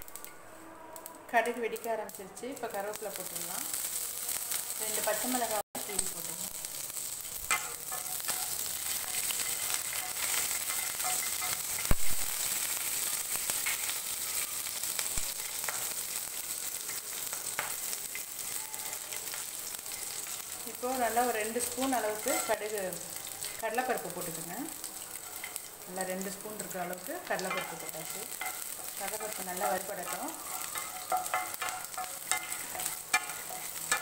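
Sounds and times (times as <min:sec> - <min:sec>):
oil sizzling in a frying pan: 0:00.0 - 0:34.0.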